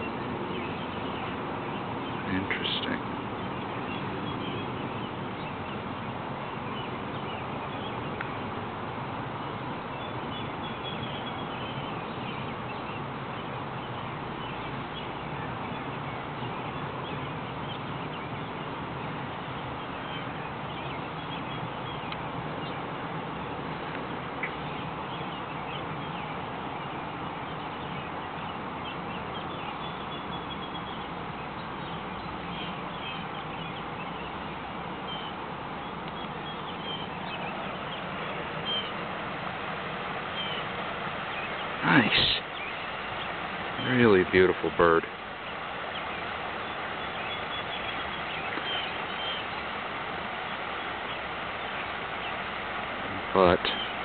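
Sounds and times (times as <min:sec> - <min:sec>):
outdoor background noise: 0:00.0 - 0:54.0
short bird calls: 0:24.4 - 0:54.0.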